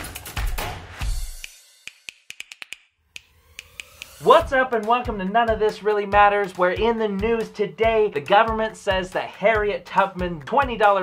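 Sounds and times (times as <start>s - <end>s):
sharp snap-like clicks: 1.4s - 4.2s.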